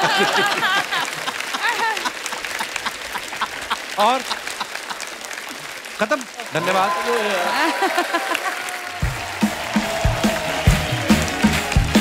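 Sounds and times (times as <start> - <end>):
audience laughing: 0.0 - 5.6, 6.5 - 9.0
audience clapping: 0.0 - 12.0.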